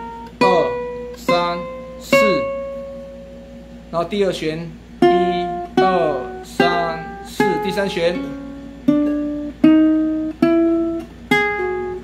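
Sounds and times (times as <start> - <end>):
ukulele notes plucked: 0.0 - 3.9, 5.0 - 12.0.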